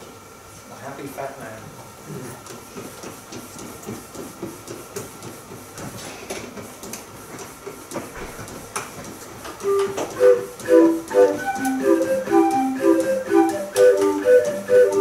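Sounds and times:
street organ playing: 0:09.6 - 0:15.0.

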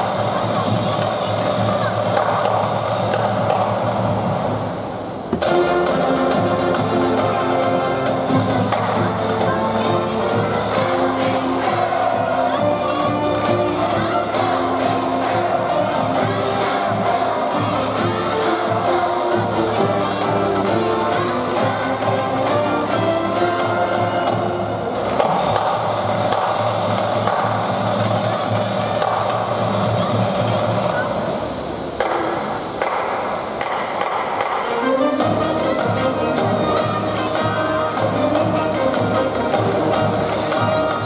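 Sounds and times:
brass band with drums: 0:00.0 - 0:41.0.

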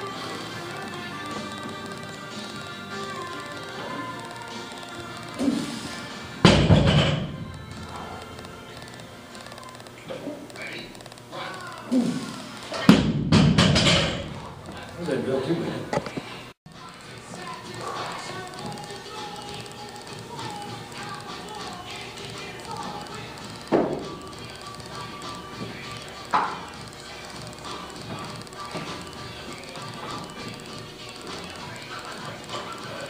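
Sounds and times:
background music: 0:00.0 - 0:09.9, 0:16.7 - 0:33.0.

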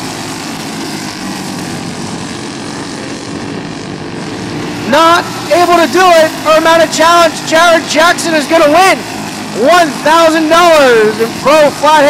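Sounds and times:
kart engines buzzing: 0:00.0 - 0:12.0.

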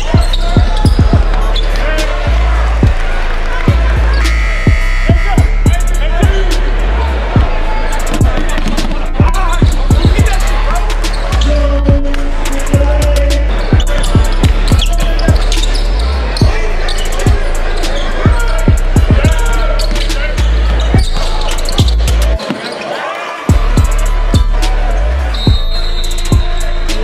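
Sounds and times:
deep bass notes: 0:00.0 - 0:22.4, 0:23.5 - 0:27.0
rap vocal: 0:00.0 - 0:22.4, 0:23.5 - 0:27.0.

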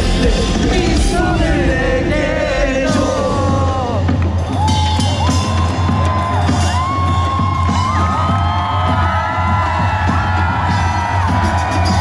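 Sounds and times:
held singing voices: 0:00.0 - 0:04.4
loud live pop music: 0:00.0 - 0:12.0
crowd whooping and cheering: 0:03.2 - 0:12.0.

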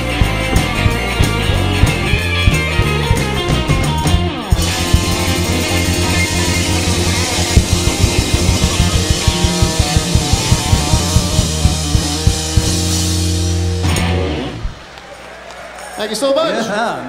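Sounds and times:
bass guitar: 0:00.0 - 0:14.9
drum kit beat: 0:00.0 - 0:15.0
electric guitar: 0:00.0 - 0:15.0
cymbals ringing: 0:04.6 - 0:13.9.

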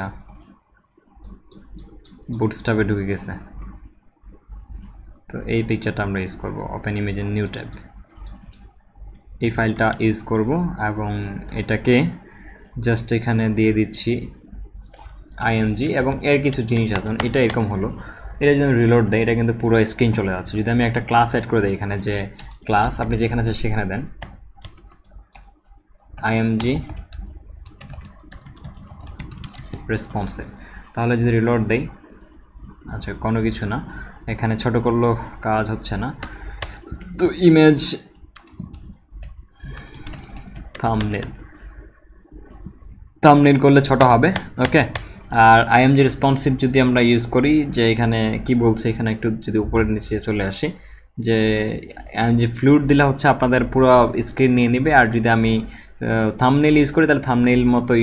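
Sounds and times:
low hum: 0:00.0 - 0:58.0
computer mouse clicks: 0:00.2 - 0:02.4, 0:04.4 - 0:05.1, 0:07.7 - 0:10.1, 0:14.2 - 0:18.2, 0:21.8 - 0:32.8, 0:35.2 - 0:37.4, 0:38.0 - 0:43.0, 0:43.8 - 0:45.4
person speaking: 0:01.3 - 0:08.7, 0:09.4 - 0:25.5, 0:26.2 - 0:58.0.

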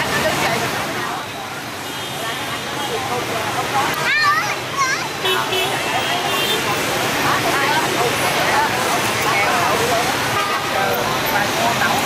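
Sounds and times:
crowd voices: 0:00.0 - 0:12.0
motorbike and traffic noise: 0:00.0 - 0:12.0.

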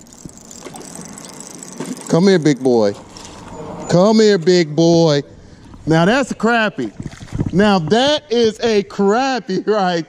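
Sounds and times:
fish splashing in water: 0:00.0 - 0:02.1
traffic noise: 0:00.0 - 0:07.2.

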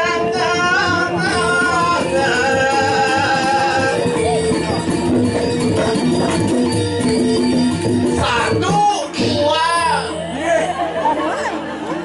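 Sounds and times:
voices chattering: 0:09.2 - 0:12.0.

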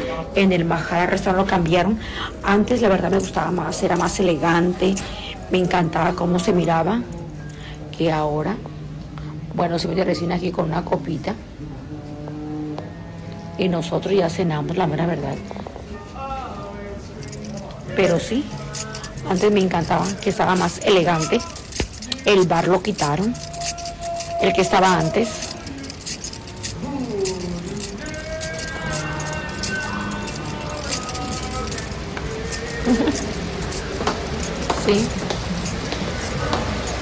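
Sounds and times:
light metallic jingling: 0:00.0 - 0:08.7, 0:13.9 - 0:37.0
background music: 0:00.0 - 0:37.0
voices in a room: 0:00.0 - 0:37.0
person speaking: 0:17.2 - 0:37.0.

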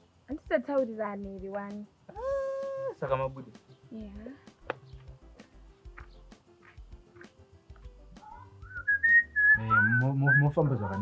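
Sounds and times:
person whistling a tune: 0:08.6 - 0:10.6.

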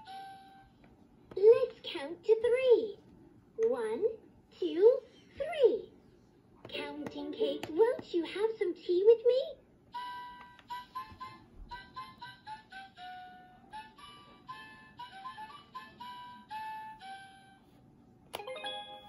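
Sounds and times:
toy playing electronic tune: 0:00.0 - 0:00.7, 0:10.0 - 0:17.7
toy chime: 0:10.0 - 0:17.6, 0:18.4 - 0:19.0.

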